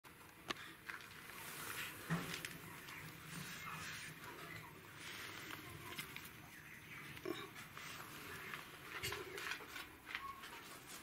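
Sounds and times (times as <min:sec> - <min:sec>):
straw nest rustling: 0:00.8 - 0:11.0.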